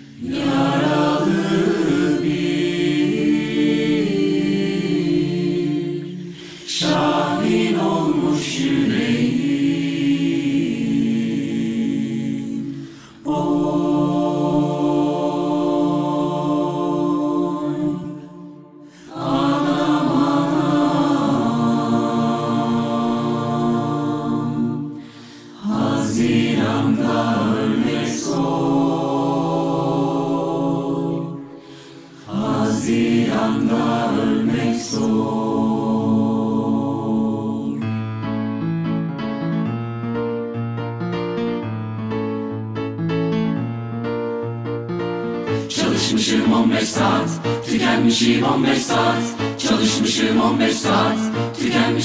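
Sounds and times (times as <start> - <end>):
a cappella ensemble singing chords: 0.0 - 38.4, 45.2 - 52.0.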